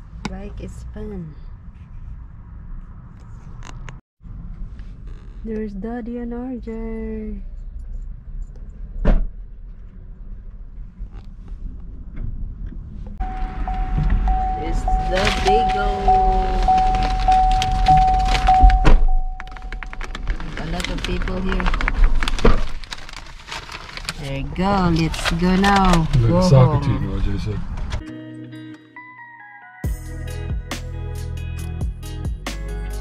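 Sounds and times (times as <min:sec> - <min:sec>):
door-open warning chime: 0:13.2 - 0:20.1
paper bag rustling: 0:14.9 - 0:18.8, 0:19.4 - 0:26.7
door and seat thuds: 0:17.9 - 0:19.5.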